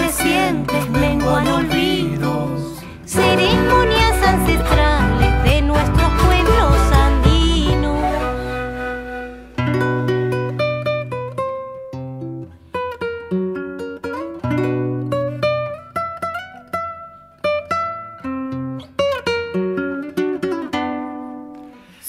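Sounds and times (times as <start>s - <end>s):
guitar bass notes: 0.0s - 12.7s
charango picking a melody: 0.0s - 21.8s.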